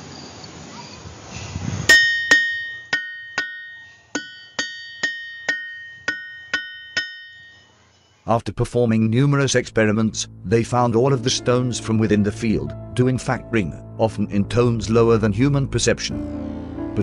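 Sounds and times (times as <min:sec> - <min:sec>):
hammer striking ringing rock: 0:01.9 - 0:07.7.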